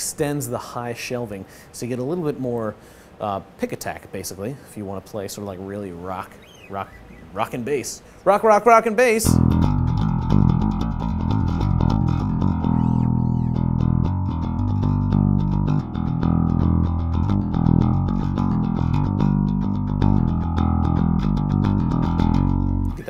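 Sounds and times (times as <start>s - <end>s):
electric bass rock line: 9.2s - 23.0s.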